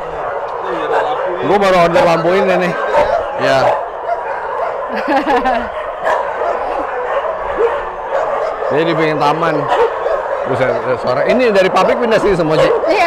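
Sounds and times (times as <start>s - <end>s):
many dogs barking: 0.0s - 13.0s.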